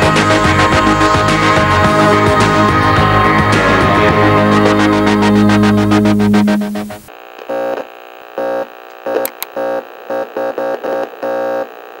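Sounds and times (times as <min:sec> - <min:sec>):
synthesizer blips: 0:03.6 - 0:07.1.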